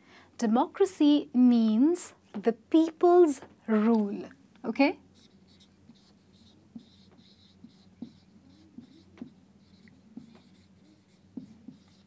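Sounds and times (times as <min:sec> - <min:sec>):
marker pen squeaking on whiteboard: 0:05.2 - 0:12.0.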